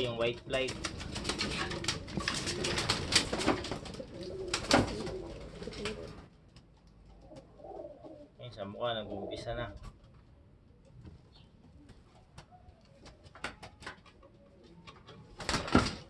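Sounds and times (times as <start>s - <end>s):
rustling and crackling: 0.0s - 7.8s
pigeons cooing: 0.5s - 6.3s, 7.1s - 8.4s, 9.0s - 15.4s.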